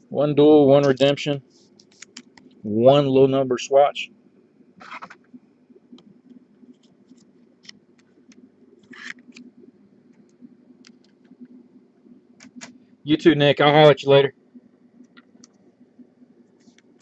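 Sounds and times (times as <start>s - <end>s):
low steady hum: 0.0s - 17.0s.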